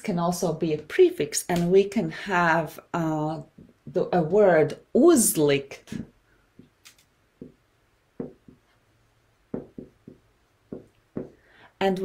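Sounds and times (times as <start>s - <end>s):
marker writing on a whiteboard: 7.4s - 7.6s, 8.2s - 11.4s.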